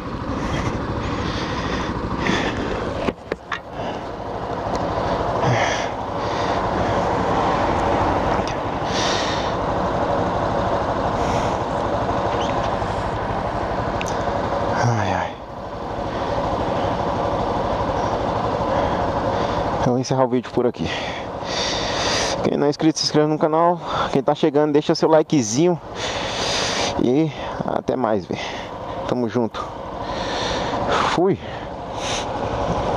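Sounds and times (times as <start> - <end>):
motorcycle engine running: 0.0 - 32.9.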